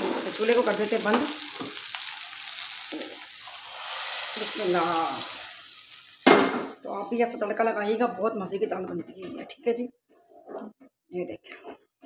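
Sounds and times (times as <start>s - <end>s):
oil sizzling in a frying pan: 0.0s - 7.7s.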